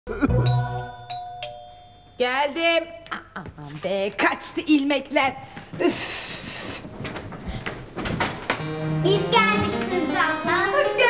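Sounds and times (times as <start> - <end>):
doorbell chime ringing: 0.4 - 2.2.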